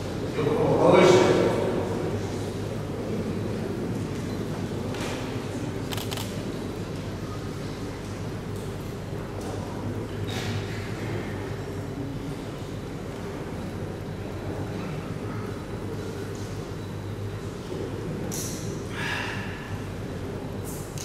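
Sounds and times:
faint background murmur: 0.0 - 21.0
steady low hum: 0.0 - 21.0.

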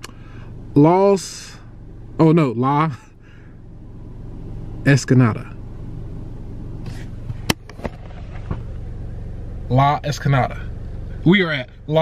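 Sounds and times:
car engine rumbling in cabin: 0.0 - 12.0.

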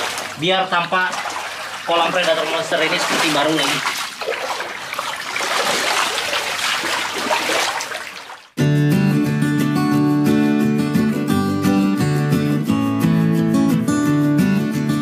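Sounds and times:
water splashing and dripping: 0.0 - 8.6
acoustic guitar music: 8.6 - 15.0.

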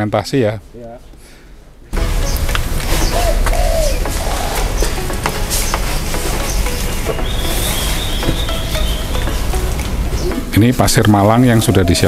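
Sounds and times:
bird calling: 2.0 - 10.6, 11.2 - 12.0
thin high note: 2.0 - 10.6.

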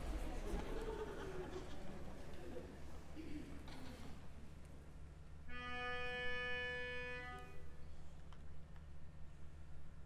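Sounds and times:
melodica held note: 5.5 - 7.7.

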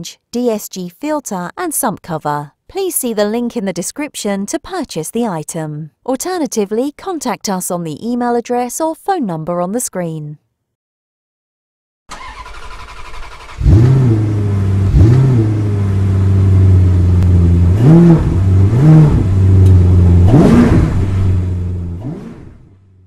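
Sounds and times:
car engine starting and revving: 12.1 - 23.0.

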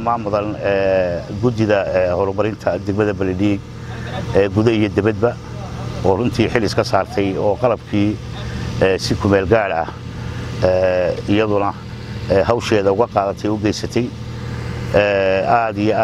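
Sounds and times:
man talking: 0.0 - 14.2, 14.9 - 16.0.

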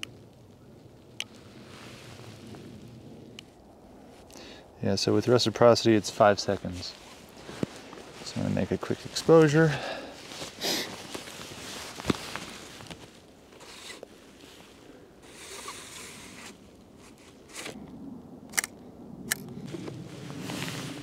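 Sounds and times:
dark slide sliding and rustling: 1.6 - 3.0, 19.7 - 21.0.

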